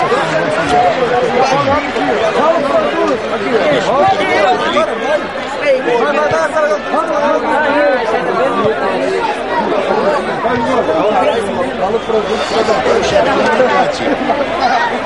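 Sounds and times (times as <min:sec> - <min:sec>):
babble of spectators' voices: 0:00.0 - 0:15.0.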